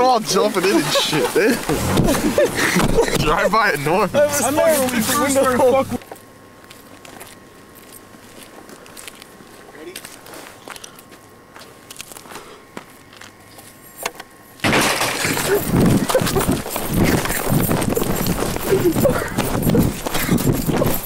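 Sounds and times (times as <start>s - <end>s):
muffled voices: 0.0s - 6.0s
camera rubbing and knocking: 16.6s - 18.7s.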